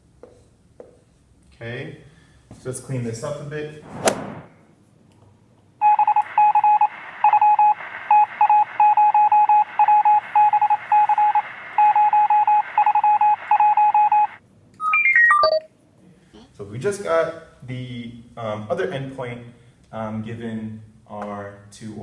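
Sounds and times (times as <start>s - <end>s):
rapid electronic beeps: 5.8s - 15.6s.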